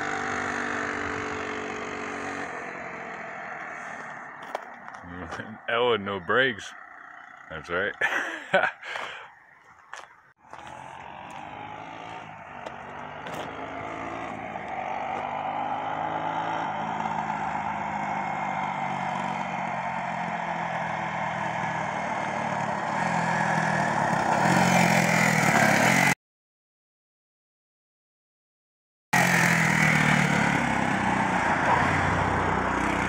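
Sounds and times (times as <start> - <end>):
four-stroke engine passing: 0.0 - 26.2, 29.2 - 33.0.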